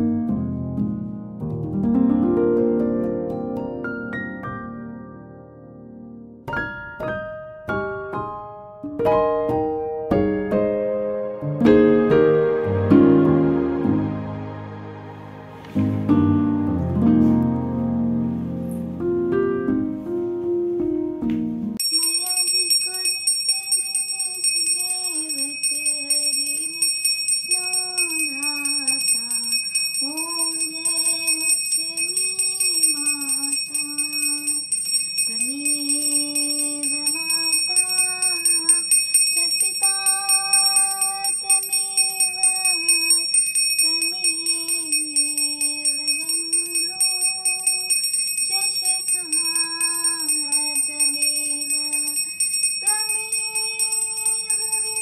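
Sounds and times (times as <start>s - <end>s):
hand bell ringing rapidly: 21.8s - 55.0s
woman singing a hymn: 21.9s - 55.0s.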